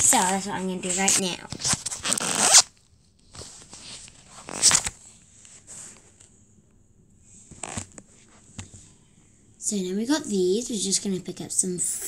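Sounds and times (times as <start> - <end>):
phone rubbing against clothing: 7.5 - 8.7.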